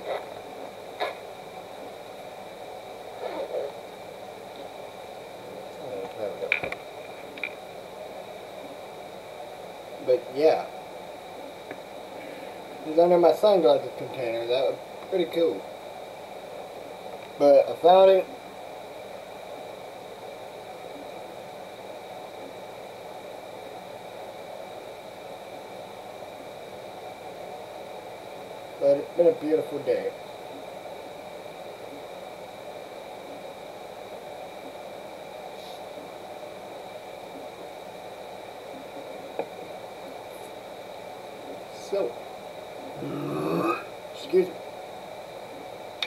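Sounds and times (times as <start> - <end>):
steady background hiss: 0.0 - 46.0
person burping: 43.0 - 43.9.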